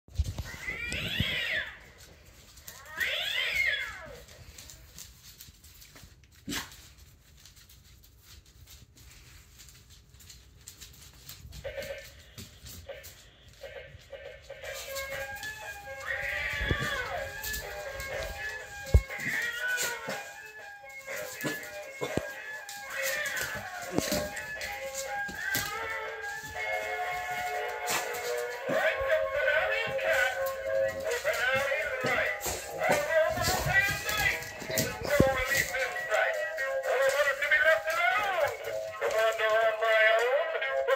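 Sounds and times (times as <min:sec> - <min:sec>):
toy cat meowing: 0:00.5 - 0:01.8, 0:02.8 - 0:04.2, 0:16.0 - 0:20.3.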